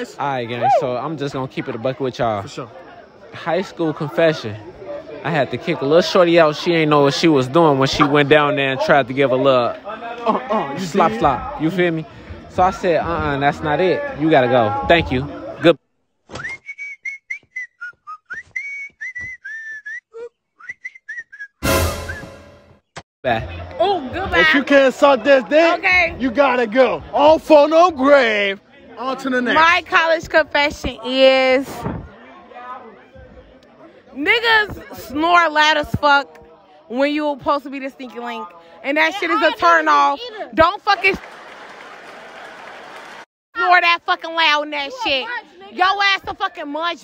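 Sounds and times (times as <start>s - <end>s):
whistled jaunty tune: 16.3s - 22.8s
audience applause: 41.0s - 43.3s.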